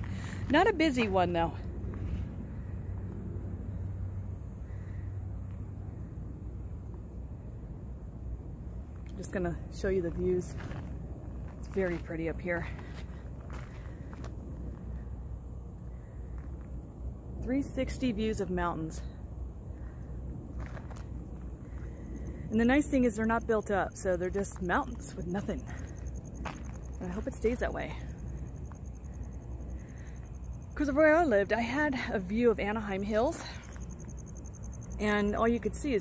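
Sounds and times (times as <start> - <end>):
low outdoor rumble: 0.0 - 36.0.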